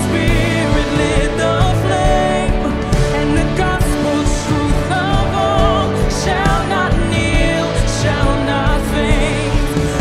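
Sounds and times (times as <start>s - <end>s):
acoustic guitar: 0.0s - 10.0s
worship band playing: 0.0s - 10.0s.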